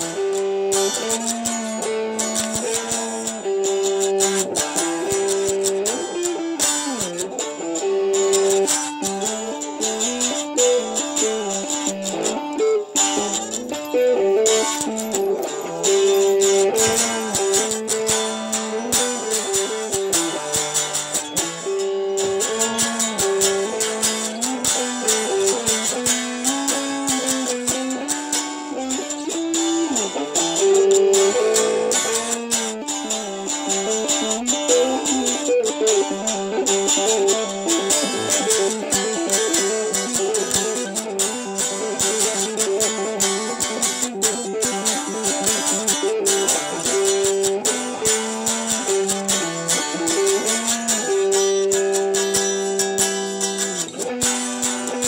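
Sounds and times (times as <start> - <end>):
electric guitar solo: 0.0 - 55.0.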